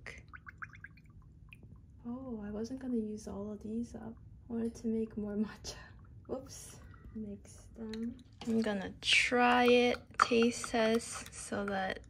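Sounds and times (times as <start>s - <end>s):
liquid gurgling from a jar: 0.0s - 1.7s.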